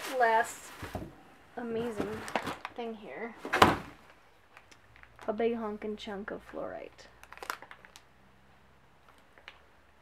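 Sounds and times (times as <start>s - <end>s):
crinkles and clicks of handling: 1.9s - 2.9s, 4.0s - 5.4s, 6.5s - 8.2s, 9.0s - 10.0s.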